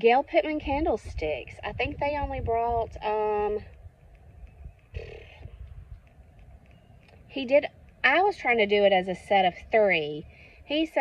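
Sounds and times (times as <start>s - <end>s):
faint low rumble: 0.3s - 11.0s.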